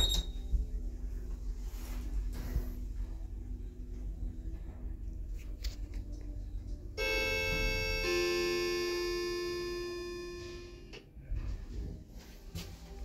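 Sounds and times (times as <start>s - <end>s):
elevator arrival chime: 0.0s - 0.7s, 7.0s - 10.9s.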